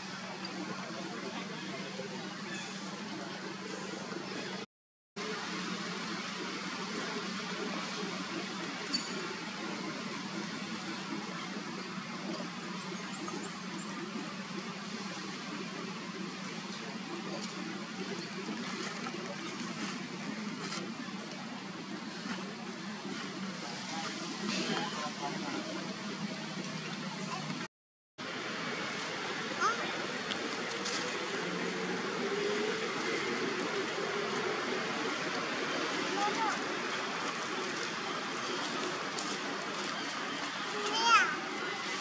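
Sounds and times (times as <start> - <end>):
constant low hum: 5.2 - 42.0.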